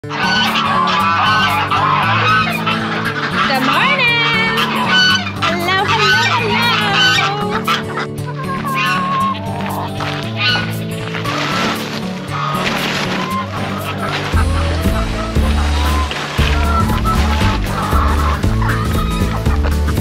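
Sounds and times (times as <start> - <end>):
poultry calling: 0.0 - 20.0
background music with beat: 7.7 - 20.0.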